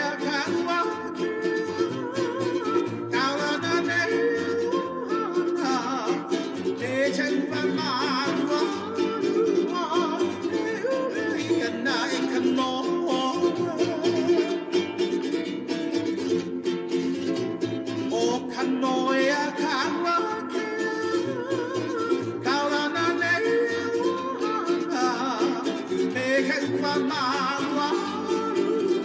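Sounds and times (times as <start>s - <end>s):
person singing: 0.0s - 29.0s
strummed ukulele: 0.0s - 29.0s.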